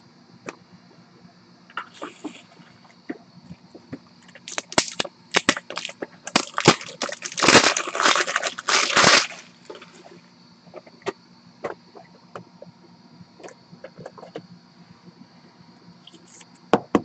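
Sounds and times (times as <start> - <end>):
plastic packaging crinkling: 4.4 - 10.1.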